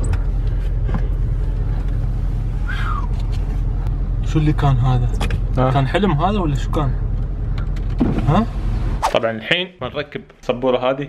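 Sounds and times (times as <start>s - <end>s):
car engine idling: 0.0s - 9.0s.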